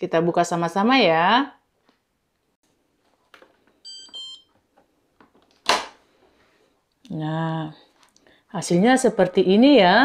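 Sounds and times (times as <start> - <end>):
short electronic beeps: 3.9 - 4.5.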